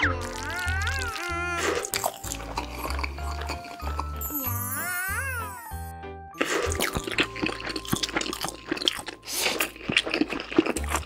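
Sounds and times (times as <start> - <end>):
crunchy chewing sound effects: 0.0 - 4.5, 6.4 - 11.0
cartoon music with pulsing bass: 0.0 - 8.9.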